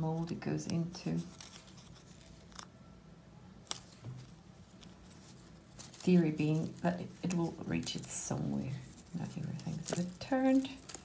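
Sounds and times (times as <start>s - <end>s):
tape handling sounds: 0.6s - 2.8s, 3.6s - 11.0s.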